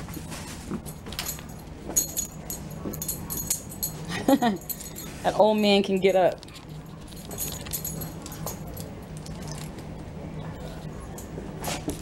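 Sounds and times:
steady low hum: 0.0s - 12.0s
keys jingling: 0.9s - 9.8s.

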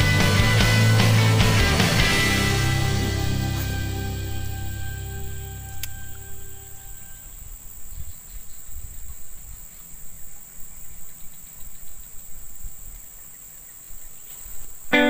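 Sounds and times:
insects droning: 1.8s - 15.0s.

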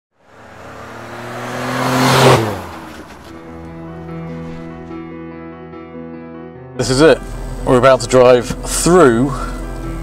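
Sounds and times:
car rushing past: 0.2s - 5.0s.

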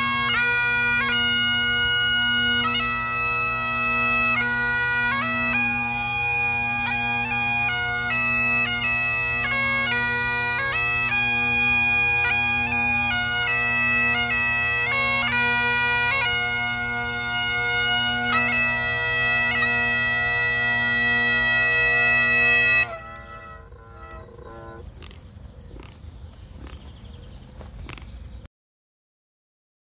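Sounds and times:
bagpipe tune: 0.0s - 25.0s.

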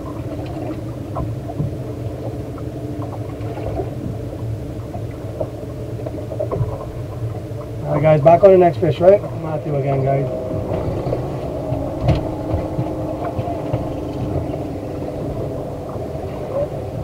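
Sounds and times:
outboard engine idling: 0.0s - 17.0s.

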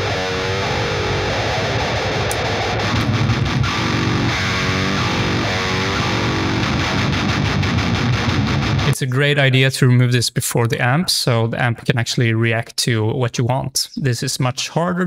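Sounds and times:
distorted electric guitar riff: 0.0s - 9.0s.

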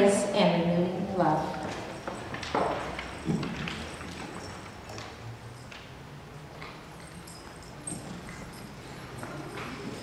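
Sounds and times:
footsteps on wooden stage: 1.4s - 5.7s.

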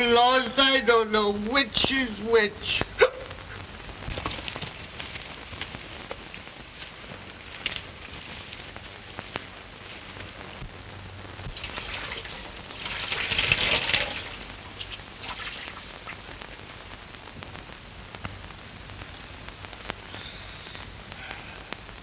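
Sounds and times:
crackling film soundtrack hiss: 0.0s - 22.0s.

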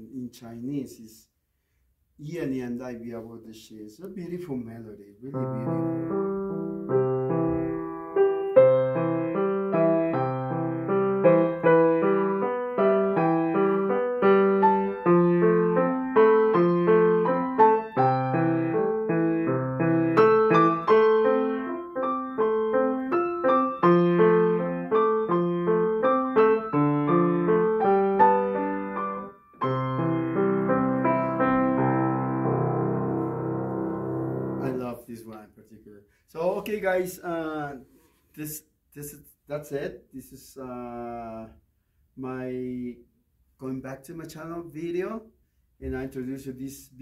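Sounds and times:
piano playing melody: 5.3s - 34.8s.

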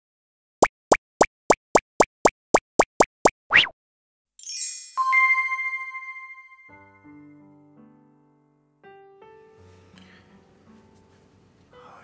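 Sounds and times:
cartoon plops: 0.6s - 3.8s
cartoon rising swoop: 3.5s - 3.7s.

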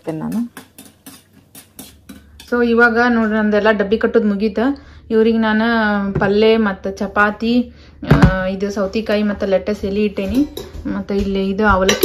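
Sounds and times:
utensils scraping a steel pan: 0.0s - 2.6s.

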